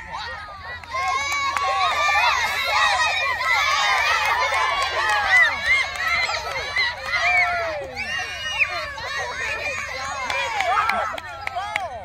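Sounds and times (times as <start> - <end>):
children shouting and calling out: 0.0 - 12.0.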